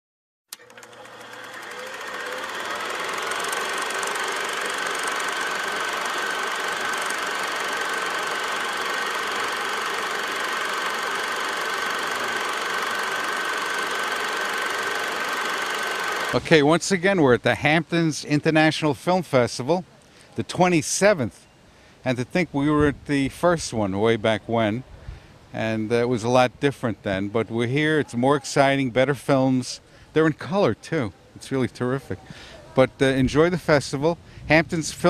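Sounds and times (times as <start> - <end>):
film projector switch click: 0.5 - 16.4
film projector whirring clatter: 0.5 - 16.5.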